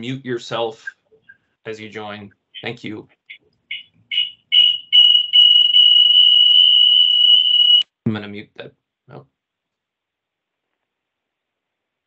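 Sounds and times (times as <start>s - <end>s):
high-pitched audio feedback squeal: 3.7s - 7.8s.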